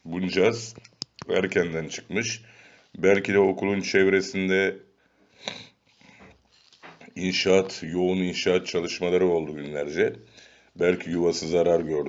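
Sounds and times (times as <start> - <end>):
faint breath: 2.4 - 3.0, 5.0 - 6.8, 10.2 - 10.8
short sniff: 5.2 - 6.8.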